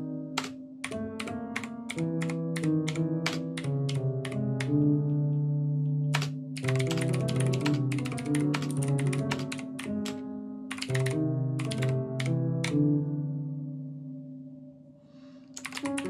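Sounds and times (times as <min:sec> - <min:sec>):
piano notes and chords: 0:00.0 - 0:16.0
fast keyboard typing: 0:00.4 - 0:04.7, 0:06.1 - 0:12.8, 0:15.6 - 0:16.0.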